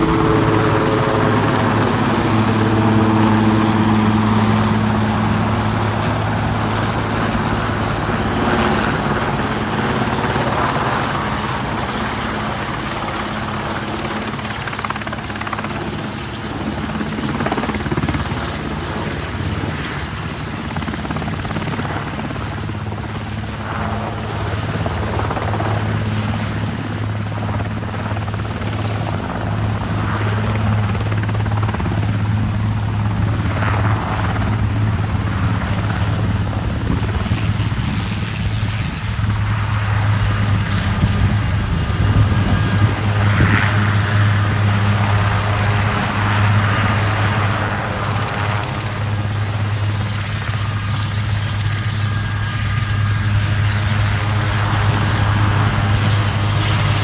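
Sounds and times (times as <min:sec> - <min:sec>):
helicopter rotor drone: 0:00.0 - 0:57.0.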